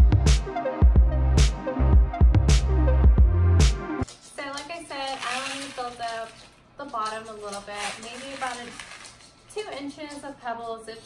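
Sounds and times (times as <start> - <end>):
woman talking: 4.3 - 11.0.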